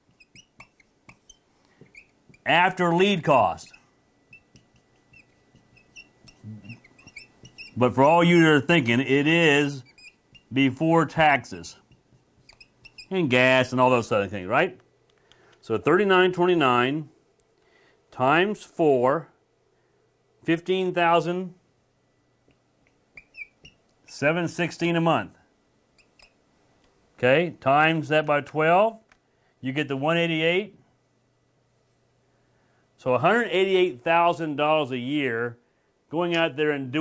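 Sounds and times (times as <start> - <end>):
marker squeaking on whiteboard: 0.0 - 13.7, 22.9 - 24.2, 25.9 - 26.4
marker tip tapping: 0.1 - 2.4, 4.3 - 7.8, 11.8 - 13.1.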